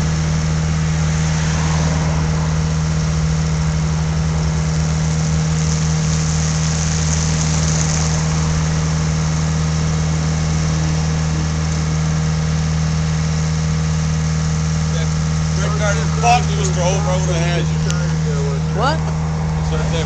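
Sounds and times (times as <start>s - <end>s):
heavy engine idling: 0.0s - 20.0s.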